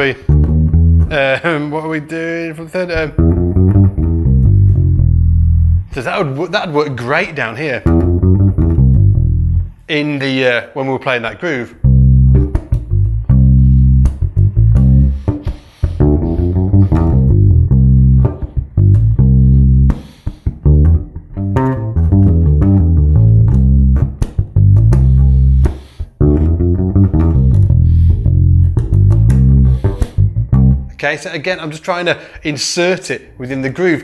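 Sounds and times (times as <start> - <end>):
electric bass guitar fingerstyle: 0.0 - 1.7, 2.4 - 6.4, 7.2 - 9.9, 11.8 - 31.0.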